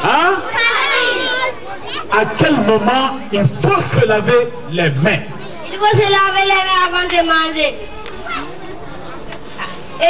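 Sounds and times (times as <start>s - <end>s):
children chattering: 0.0s - 10.0s
faint voices: 0.0s - 10.0s.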